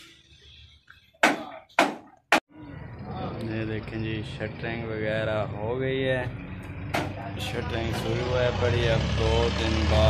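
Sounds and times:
sharp knock: 0:01.2 - 0:02.4.

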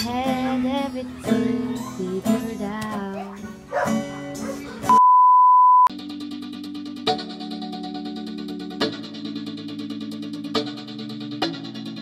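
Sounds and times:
acoustic guitar playing: 0:00.0 - 0:05.0, 0:05.9 - 0:12.0
loud steady beep: 0:04.9 - 0:05.9.

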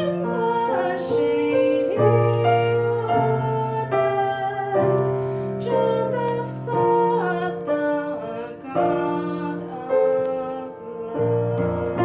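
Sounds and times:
piano accompaniment: 0:00.0 - 0:12.0
woman singing a hymn: 0:00.0 - 0:12.0.

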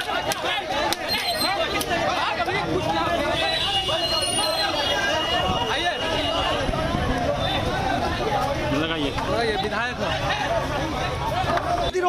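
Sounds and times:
crowd talking and calling out: 0:00.0 - 0:12.0.

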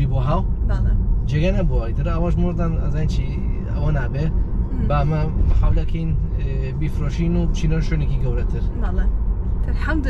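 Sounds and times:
car road rumble: 0:00.0 - 0:10.0
person talking: 0:02.9 - 0:07.2.

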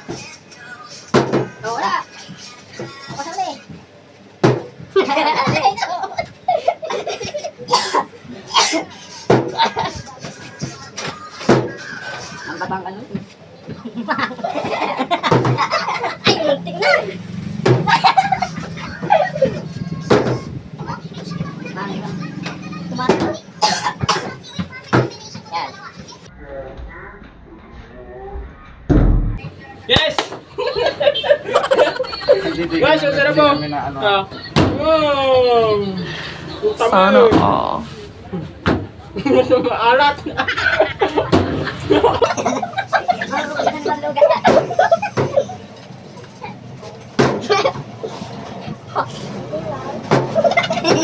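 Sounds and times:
excited voices chattering: 0:00.0 - 0:51.0
men laughing: 0:13.8 - 0:17.1, 0:17.8 - 0:19.7, 0:30.5 - 0:33.0, 0:39.2 - 0:45.7, 0:50.3 - 0:51.0
low rumble: 0:26.3 - 0:29.4.

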